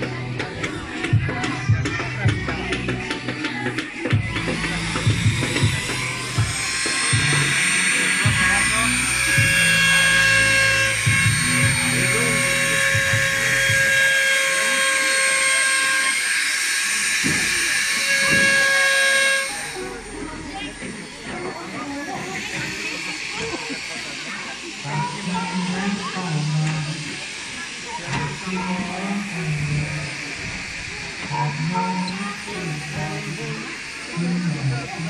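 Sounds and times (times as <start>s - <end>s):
electric power tool whining on wood: 0.3s - 35.0s.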